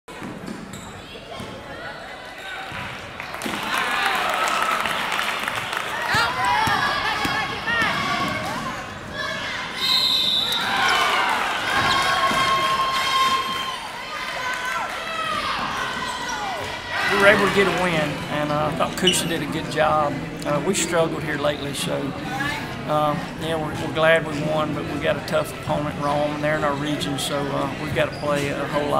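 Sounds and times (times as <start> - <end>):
sneakers squeaking on floor: 0.1 - 1.6, 15.4 - 20.1, 25.6 - 28.9
voices shouting in hall: 3.4 - 18.3.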